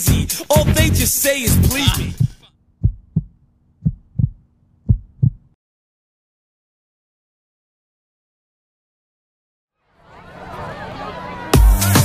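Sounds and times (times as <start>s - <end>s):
music: 0.0s - 2.2s, 11.4s - 12.0s
heartbeat thumps: 1.6s - 5.6s.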